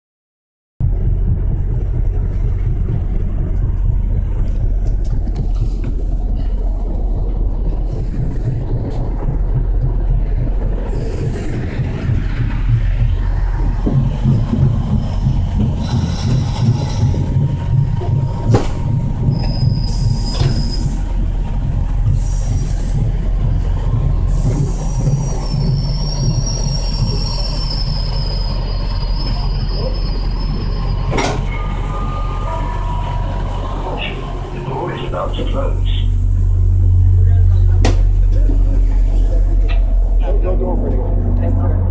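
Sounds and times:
train wheels rumbling on rail: 0.8s - 41.9s
high wavering wheel squeal: 14.3s - 21.3s, 24.4s - 35.3s.

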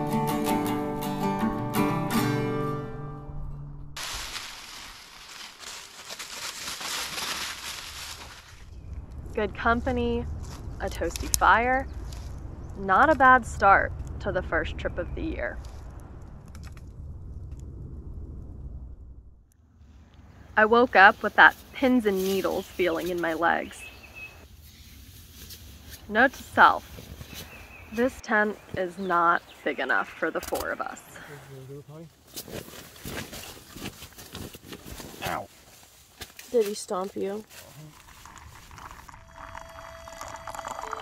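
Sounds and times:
dog rustling through tent fabric: 4.0s - 8.7s
campfire crackling and popping: 4.0s - 18.6s, 36.2s - 41.0s
low rumble: 7.4s - 20.8s.

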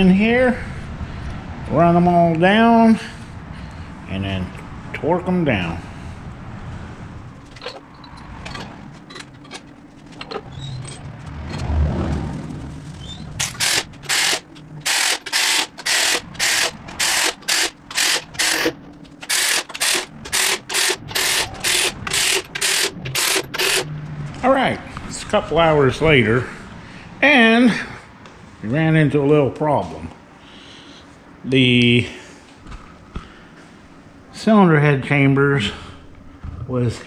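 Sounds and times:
tools clicking and knocking: 7.4s - 11.7s, 13.4s - 23.9s
hand ratchet clicking: 13.4s - 23.9s.

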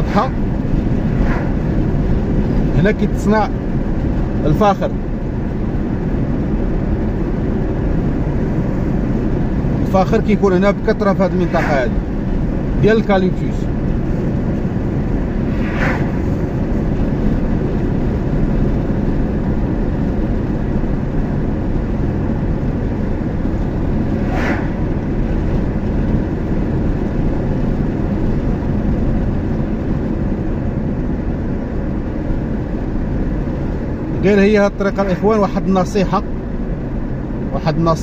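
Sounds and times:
oncoming vehicles passing: 0.0s - 35.3s
car road and engine noise: 0.0s - 38.0s.

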